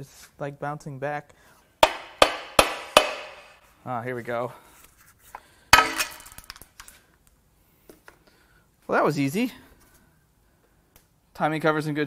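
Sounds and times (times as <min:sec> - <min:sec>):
hammer striking metal cover: 0:01.8 - 0:03.6, 0:05.8 - 0:06.4.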